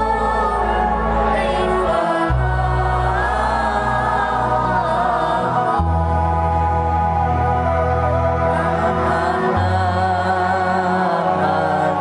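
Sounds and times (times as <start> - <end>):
bass line: 0.0 - 12.0
group singing devotional song: 0.0 - 12.0.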